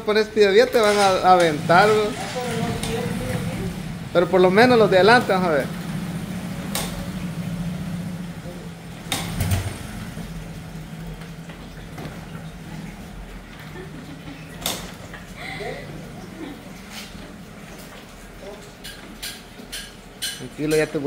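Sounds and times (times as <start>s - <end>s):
small motorcycle engine idling: 1.4s - 11.2s.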